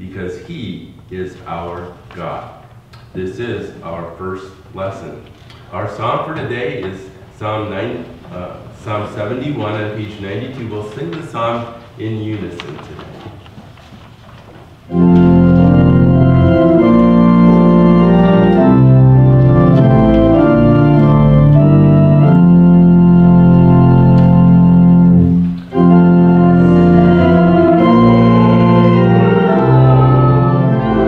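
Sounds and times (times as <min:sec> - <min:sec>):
organ playing held chords: 0:14.9 - 0:31.0.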